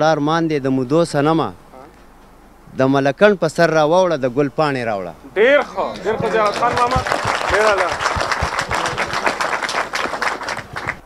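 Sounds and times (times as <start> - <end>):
audience applauding: 5.9 - 11.0.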